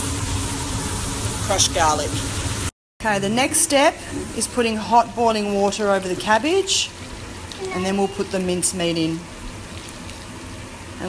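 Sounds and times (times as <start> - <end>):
boiling water pouring and splashing: 0.0 - 11.0.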